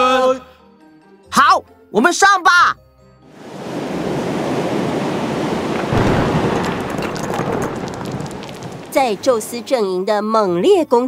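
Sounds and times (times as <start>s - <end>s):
low rumbling boom: 5.8s - 9.5s.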